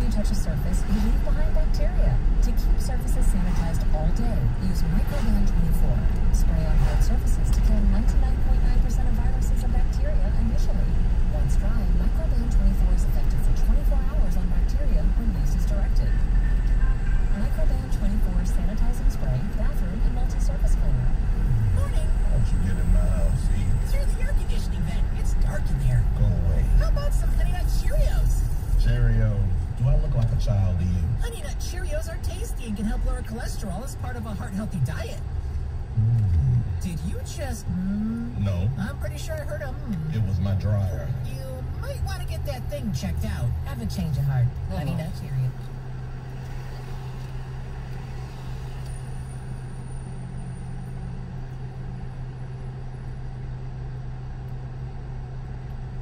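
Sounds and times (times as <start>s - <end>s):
car road and engine rumble: 0.0s - 56.0s
radio speech: 11.8s - 27.2s, 27.8s - 31.4s, 38.3s - 45.6s.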